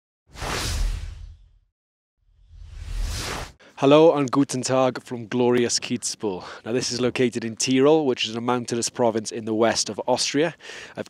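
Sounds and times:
whoosh sound effect: 0.3 - 1.5, 2.5 - 3.6.

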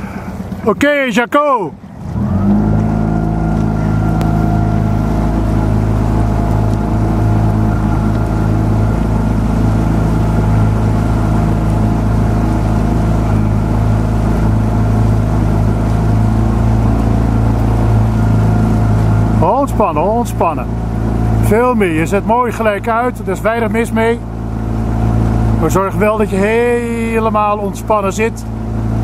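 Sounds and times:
outboard motor running: 0.0 - 29.0.

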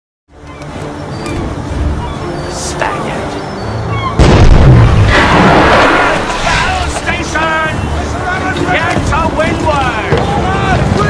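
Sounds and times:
cannon boom with low rumble: 4.2 - 7.0.

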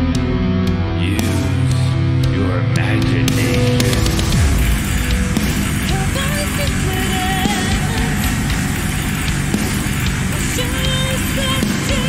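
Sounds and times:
dense backing track: 0.0 - 12.0
person speaking lyrics: 1.0 - 4.3, 10.4 - 12.0.

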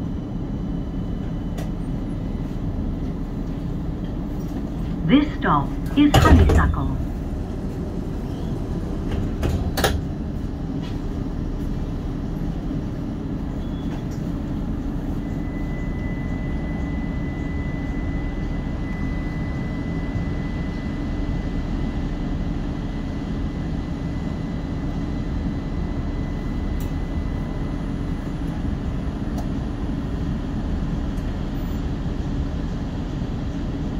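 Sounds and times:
tram low rumble: 0.0 - 33.9.

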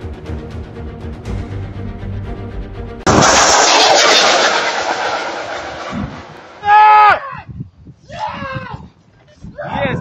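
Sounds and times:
missile launch blast: 3.1 - 7.1
man shouting: 6.6 - 7.4.

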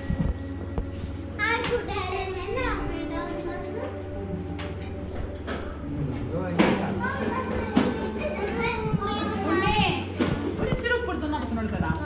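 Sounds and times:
steady low hum: 0.0 - 12.0
children calling and babbling: 1.4 - 4.6, 6.8 - 11.0
adults talking: 1.4 - 12.0.

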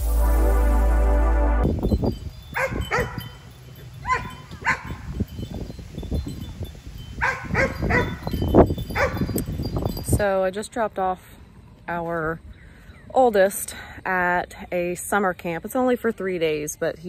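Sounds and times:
low rumble: 0.0 - 3.5.

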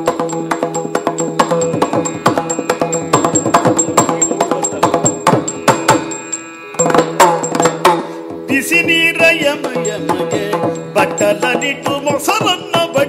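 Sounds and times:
small hand cymbals ticking: 0.0 - 13.0.

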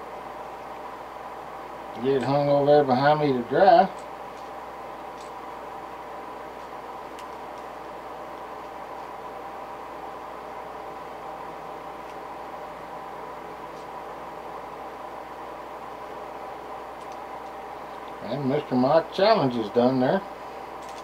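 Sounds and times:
steady machine hum: 0.0 - 21.0.

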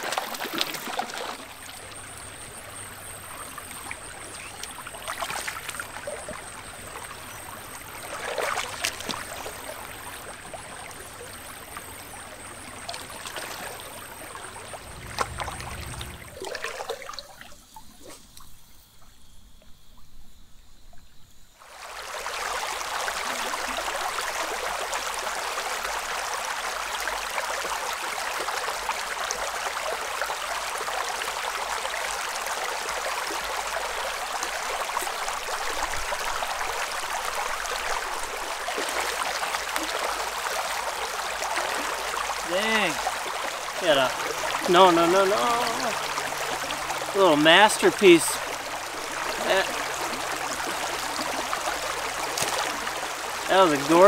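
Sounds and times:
stream rushing over rocks: 0.0 - 2.4, 21.6 - 54.0.

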